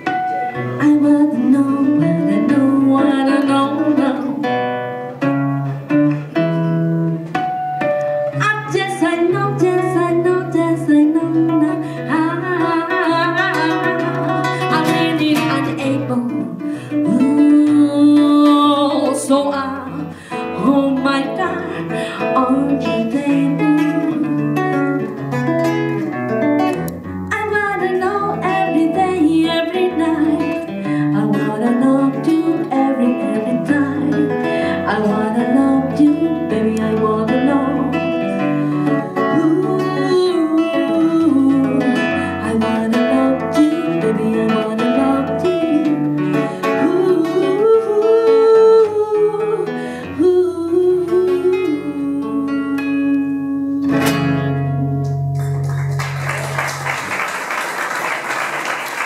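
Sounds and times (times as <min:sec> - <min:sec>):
classical guitar strumming: 0:00.0 - 0:57.3
person singing: 0:08.4 - 0:24.6, 0:39.0 - 0:55.0.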